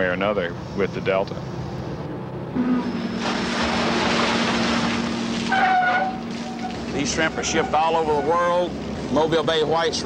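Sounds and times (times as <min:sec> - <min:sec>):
churning water rushing: 0:03.0 - 0:10.0.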